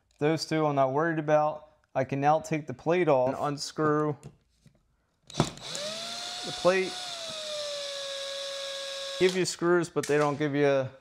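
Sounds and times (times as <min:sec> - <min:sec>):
cordless drill motor whine: 0:05.3 - 0:09.4.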